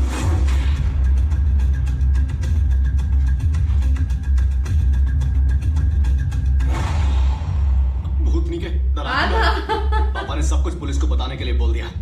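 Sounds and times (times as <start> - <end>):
tense background score: 0.0 - 12.0.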